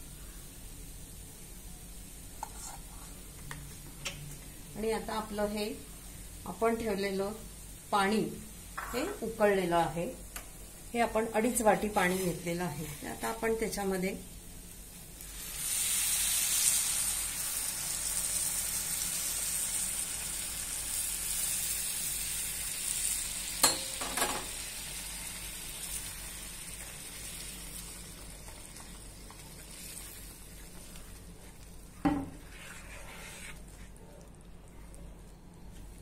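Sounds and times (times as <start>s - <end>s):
water sizzling in hot pan: 11.0s - 32.5s
bubbling while stirred: 27.9s - 36.0s.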